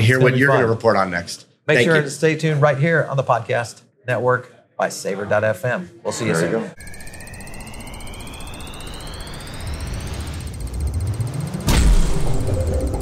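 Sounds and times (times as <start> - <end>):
held synth tones: 6.4 - 13.0
rising whistling whoosh: 6.8 - 13.0
heavy impact hit: 11.4 - 13.0.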